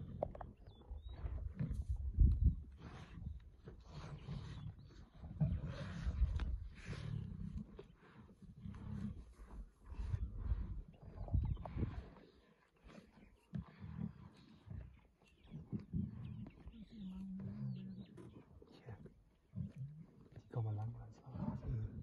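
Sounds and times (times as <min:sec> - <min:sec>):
lionesses growling: 0:00.0 - 0:22.0.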